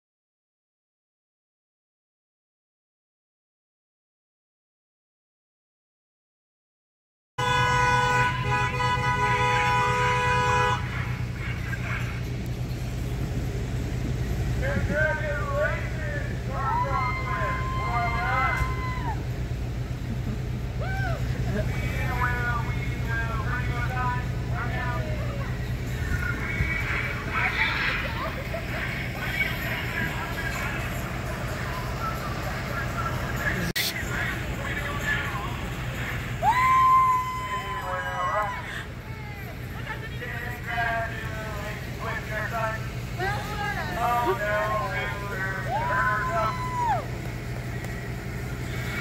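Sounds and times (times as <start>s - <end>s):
voices calling and whooping: 8.2s - 49.0s
steady low rumble: 10.8s - 38.0s, 38.6s - 49.0s
long whoo call: 16.6s - 19.5s, 20.7s - 21.4s, 36.4s - 39.4s, 45.6s - 47.3s
women and girls talking excitedly: 24.8s - 29.2s.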